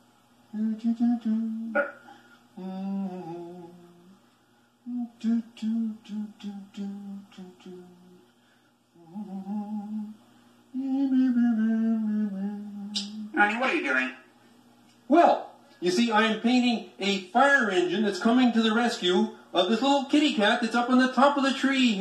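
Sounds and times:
puppet voice humming a cheerful tune: 2.6 - 4.1, 4.9 - 8.2, 10.8 - 13.4.

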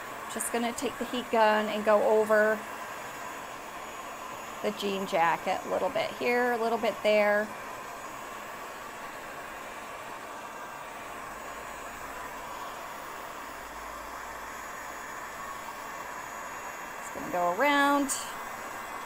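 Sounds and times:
heat gun blowing air: 0.0 - 19.0.

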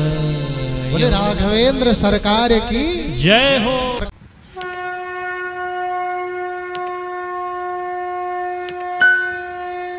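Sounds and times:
conch shell blown: 4.5 - 9.9.

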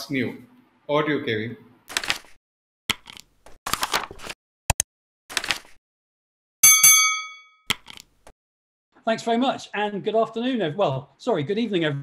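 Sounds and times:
metallic bell dings: 6.6 - 7.6.

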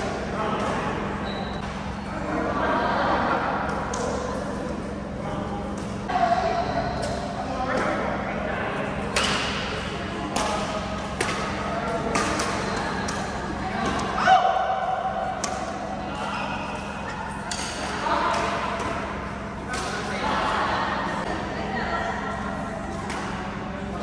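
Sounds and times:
rackets striking shuttlecock: 9.1 - 14.1, 15.3 - 15.8.

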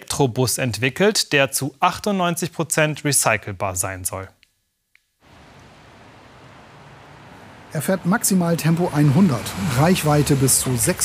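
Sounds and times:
tyre road noise hiss: 5.2 - 11.0.

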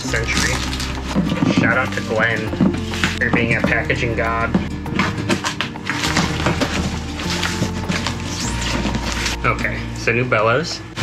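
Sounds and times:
background music: 0.0 - 11.0
cardboard box tearing open: 5.0 - 9.4.

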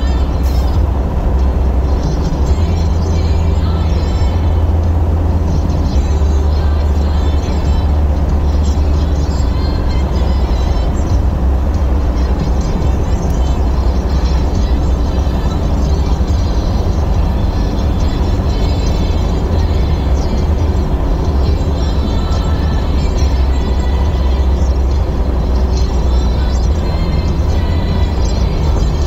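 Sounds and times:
car cabin road rumble: 0.0 - 29.0
music playing: 0.0 - 29.0.

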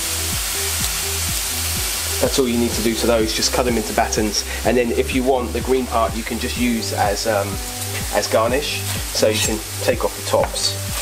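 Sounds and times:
background music: 0.0 - 11.0
beef sizzling in a hot pan: 0.0 - 11.0.

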